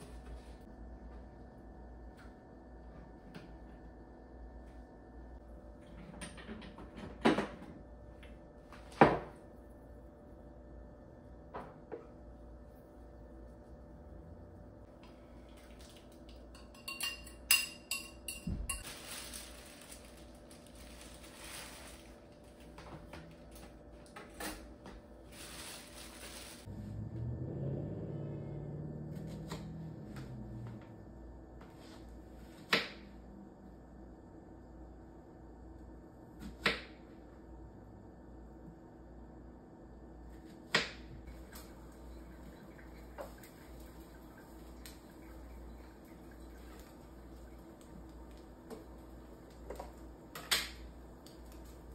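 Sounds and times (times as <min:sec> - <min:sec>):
low hum: 0:09.4 - 0:36.3.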